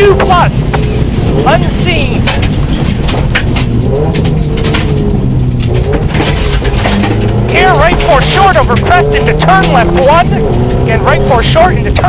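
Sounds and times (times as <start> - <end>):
car engine heard inside cabin: 0.0 - 12.0.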